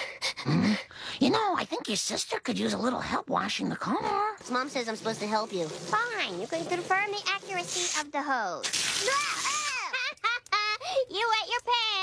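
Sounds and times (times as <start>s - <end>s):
garden hose spraying: 4.3s - 12.0s
child yelping: 9.0s - 10.0s
girl laughing: 9.1s - 11.1s.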